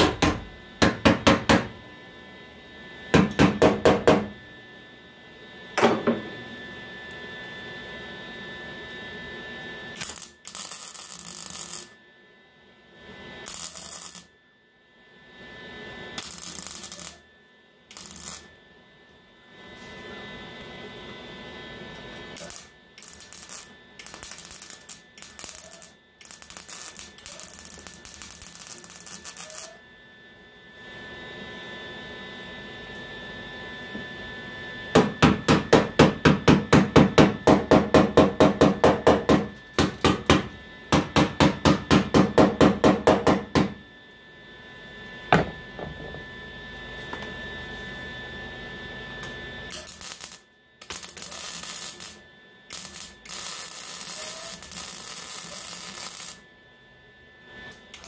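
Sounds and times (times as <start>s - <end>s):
welding arc hissing and crackling: 9.9s - 12.0s, 13.4s - 14.3s, 16.2s - 17.2s, 17.9s - 18.5s, 22.4s - 29.8s, 49.7s - 56.4s.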